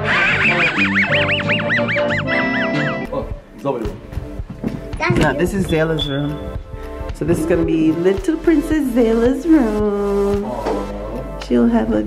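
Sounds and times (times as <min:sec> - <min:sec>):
cartoon dog wheezing laugh: 0:00.0 - 0:03.0
cartoon background music: 0:00.0 - 0:04.0.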